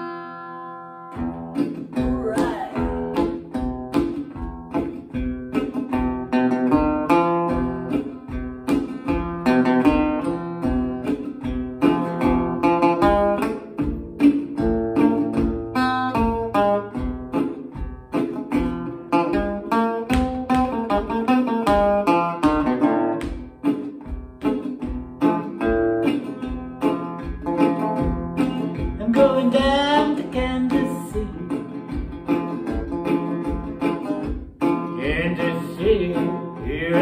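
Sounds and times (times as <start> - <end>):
resonator guitar picked blues: 0.0 - 37.0
man singing: 34.9 - 37.0.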